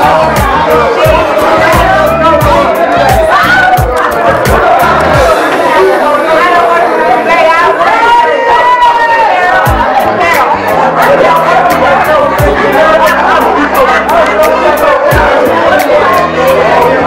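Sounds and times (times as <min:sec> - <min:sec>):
church music with many voices singing: 0:00.0 - 0:17.0.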